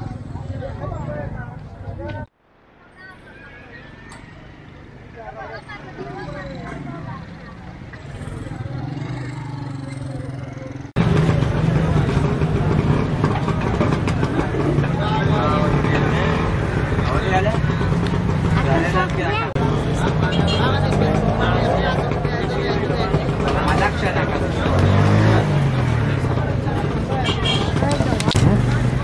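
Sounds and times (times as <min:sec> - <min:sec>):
motorcycle engines passing: 0:00.0 - 0:02.3, 0:03.7 - 0:29.0
market chatter: 0:00.0 - 0:29.0
people's voices: 0:00.0 - 0:29.0.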